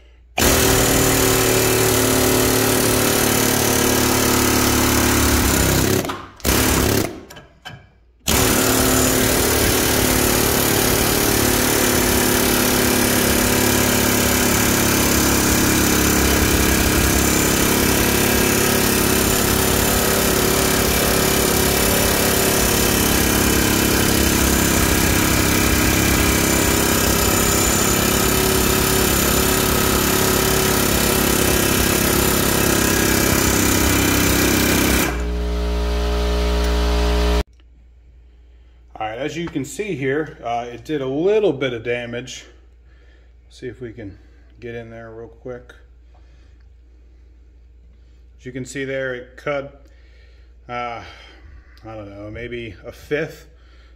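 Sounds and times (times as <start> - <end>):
air hammer pneumatic rattle: 0.4 - 7.7, 8.3 - 35.4.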